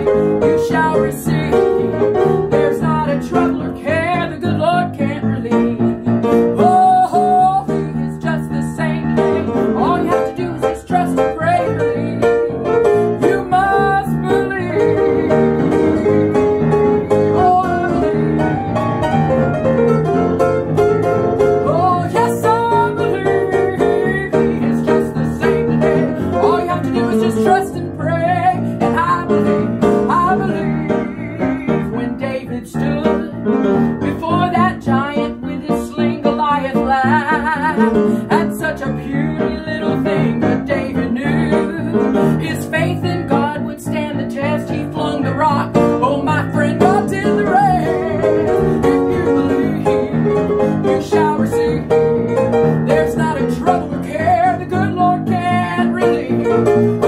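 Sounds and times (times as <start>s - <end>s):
piano playing: 0.0s - 57.0s
instruments playing melody: 13.8s - 22.6s.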